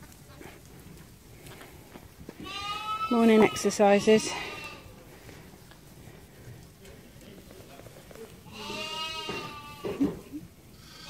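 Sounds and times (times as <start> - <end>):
small hooves running on straw: 0.0 - 11.0.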